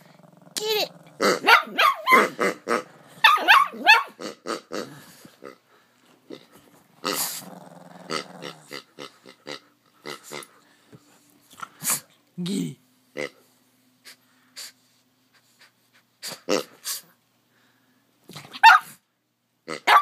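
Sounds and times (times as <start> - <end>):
dog growling and barking: 0.0 - 5.1, 7.1 - 9.0, 18.3 - 19.0, 19.7 - 20.0
rubber pig toy oinking: 0.4 - 2.9, 4.2 - 5.6, 19.7 - 20.0.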